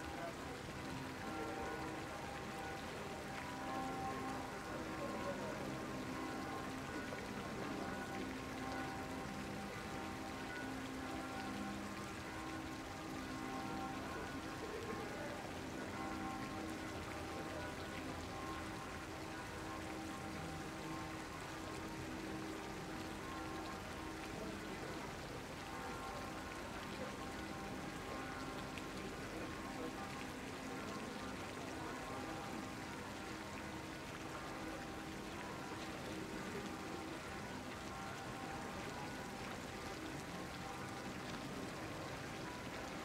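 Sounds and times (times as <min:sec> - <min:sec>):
fountain splashing into pond: 0:00.0 - 0:43.0
soft music of long tones: 0:00.0 - 0:43.0.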